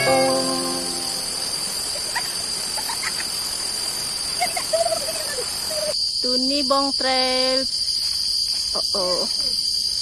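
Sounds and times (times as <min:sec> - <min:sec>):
high insect drone: 0:00.0 - 0:10.0.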